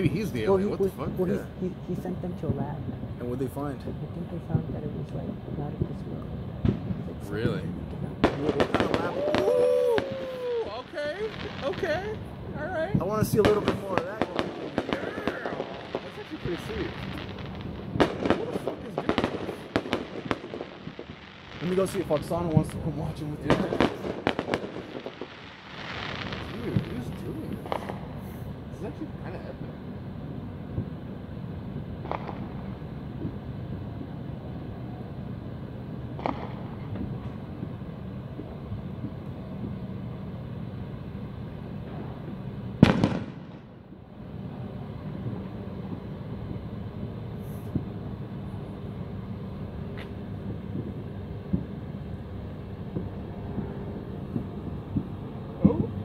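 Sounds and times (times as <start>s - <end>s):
background murmur: 0.0s - 25.2s, 25.8s - 31.3s, 32.0s - 56.0s
distant fireworks bangs: 0.0s - 56.0s.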